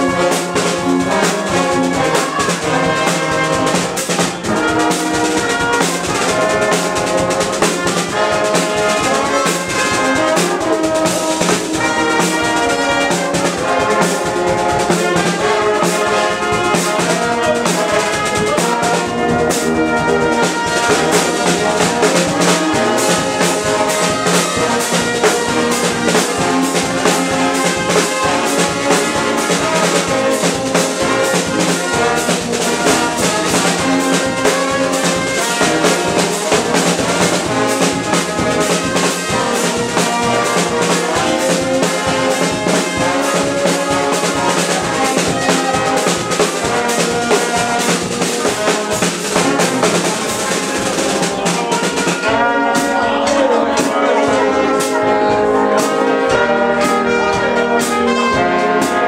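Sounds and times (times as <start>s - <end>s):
brass band horns playing: 0.0s - 59.0s
snare and bass drum: 0.0s - 59.0s.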